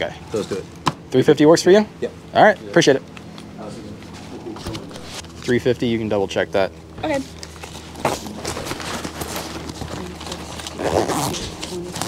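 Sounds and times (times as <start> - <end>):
banknotes rustling and crinkling: 7.3 - 12.0.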